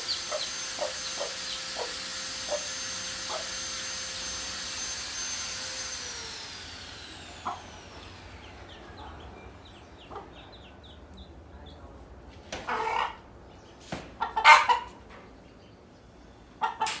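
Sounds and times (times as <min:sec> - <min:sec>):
chicks peeping: 0:00.0 - 0:02.7, 0:07.4 - 0:17.0
hen clucking loudly: 0:00.0 - 0:02.7, 0:12.7 - 0:13.3, 0:14.2 - 0:15.1, 0:16.6 - 0:17.0.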